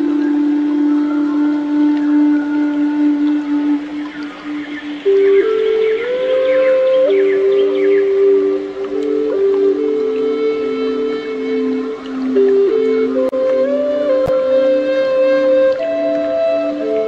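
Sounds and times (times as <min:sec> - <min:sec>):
slow held-note background music: 0:00.0 - 0:17.0.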